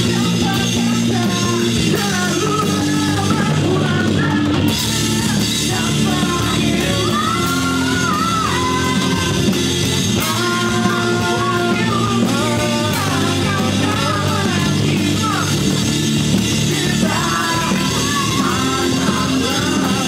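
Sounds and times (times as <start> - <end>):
drum kit: 0.0 - 20.0
electric guitars: 0.0 - 20.0
keyboard: 0.0 - 20.0
man singing lead vocal: 0.0 - 20.0.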